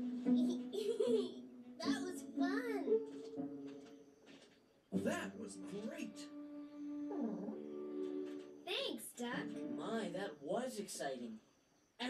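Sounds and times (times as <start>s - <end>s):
music: 0.0s - 10.3s.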